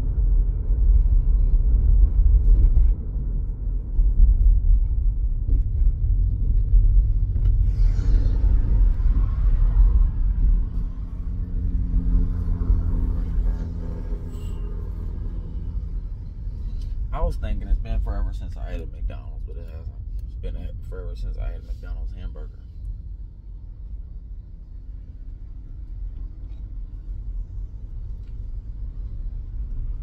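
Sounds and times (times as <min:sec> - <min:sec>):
car engine and tyre rumble: 0:00.0 - 0:30.0
steady low hum: 0:00.0 - 0:30.0.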